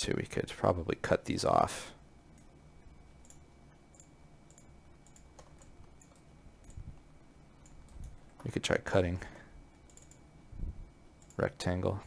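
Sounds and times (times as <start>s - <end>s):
keyboard and mouse clicks: 3.2s - 6.8s, 7.6s - 8.5s, 9.8s - 10.2s.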